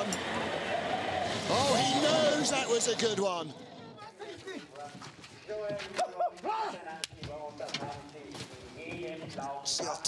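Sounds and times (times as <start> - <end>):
voices calling out: 0.0 - 4.6.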